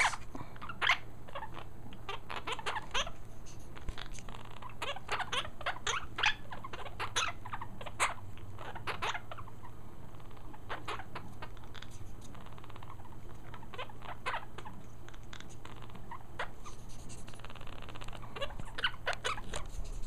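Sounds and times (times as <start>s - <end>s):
parrots chirping and clicking: 0.0s - 20.0s.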